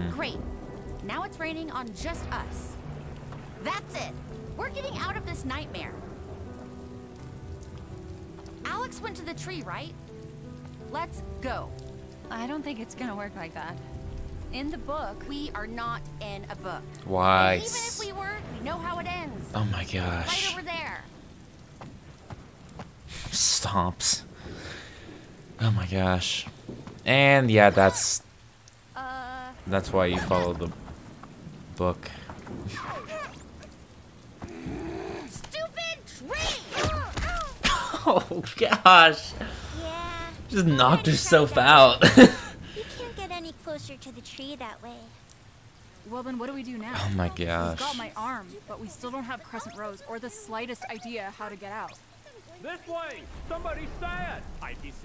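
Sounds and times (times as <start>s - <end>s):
soft sustained music tones: 0.0s - 22.8s
steady rain: 0.0s - 55.0s
person speaking: 16.6s - 18.2s, 29.0s - 30.7s, 38.1s - 44.2s, 46.4s - 53.2s
character strained vocal cries: 34.4s - 35.4s.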